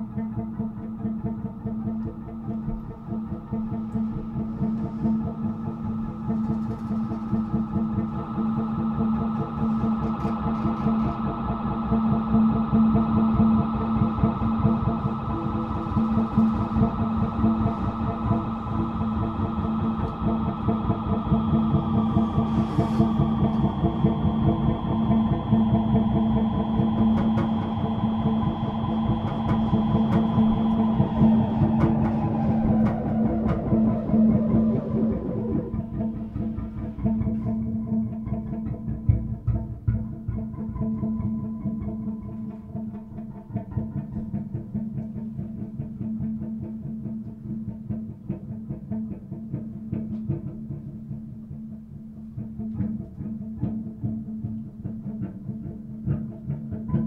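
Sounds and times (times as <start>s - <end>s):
experimental guitar drone music: 0.0s - 57.0s.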